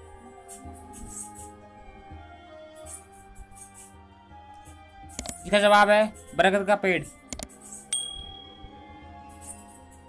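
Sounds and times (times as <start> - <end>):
faint background music: 0.0 - 10.0
quick clicks: 5.1 - 5.4, 7.2 - 7.8
bright bell ding: 7.9 - 8.8.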